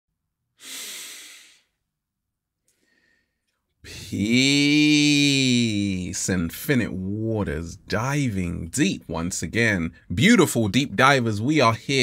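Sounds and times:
man taking deep breath: 0.6s - 1.8s, 2.7s - 3.6s.

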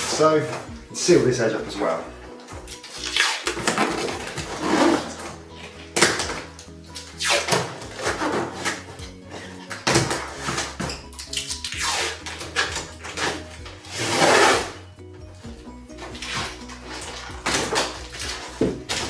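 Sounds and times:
background music: 0.0s - 19.0s
packing tape pulled off roll: 2.6s - 14.8s, 16.0s - 19.0s.

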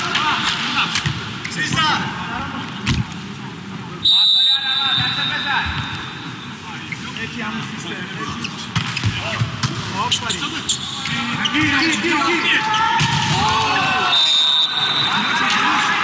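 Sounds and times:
players shouting: 12.3s - 16.0s.

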